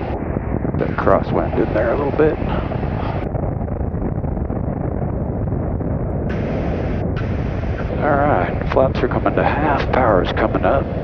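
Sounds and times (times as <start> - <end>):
rushing air: 0.0 - 11.0
twin piston aircraft engines droning: 0.0 - 11.0.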